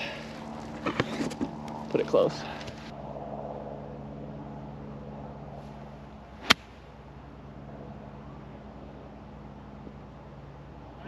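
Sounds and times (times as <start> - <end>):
golf club striking ball: 6.4 - 6.8.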